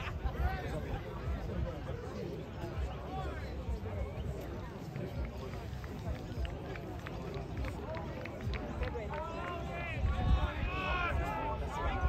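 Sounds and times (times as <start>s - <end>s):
players and spectators shouting: 9.0s - 12.0s.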